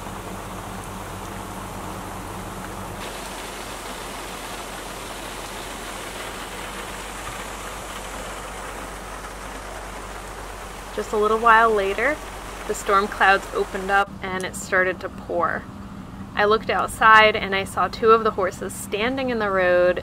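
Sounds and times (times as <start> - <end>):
rain on a trailer roof: 0.0 - 15.4
low hum: 0.0 - 20.0.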